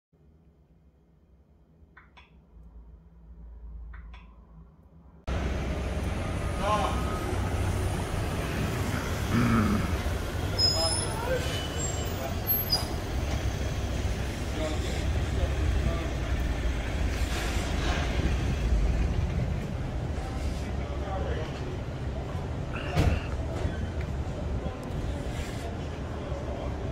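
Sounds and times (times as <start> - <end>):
traffic rumble: 2.0 - 26.9
passers-by talking: 6.4 - 26.9.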